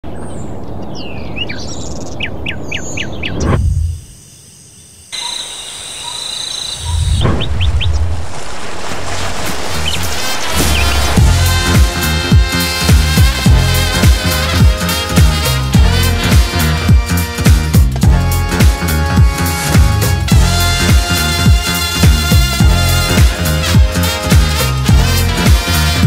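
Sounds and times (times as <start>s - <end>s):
birds chirping: 0.0s - 12.7s
low rumble: 6.8s - 14.0s
music with a beat: 11.2s - 26.0s.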